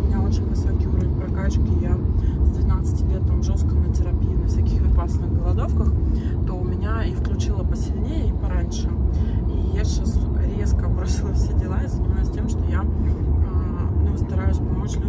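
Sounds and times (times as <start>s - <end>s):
car road and engine rumble: 0.0s - 15.0s
woman talking: 0.0s - 15.0s.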